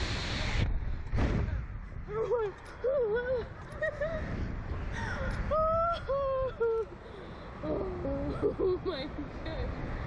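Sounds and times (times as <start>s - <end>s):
wind rumble on microphone: 0.0s - 6.8s
woman crying ooh: 5.5s - 7.0s.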